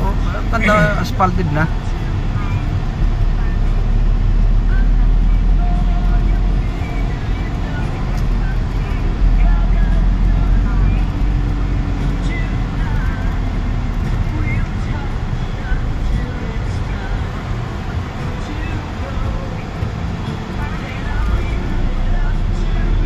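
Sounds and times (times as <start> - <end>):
vehicle engine and tyres rumbling: 0.0 - 23.0.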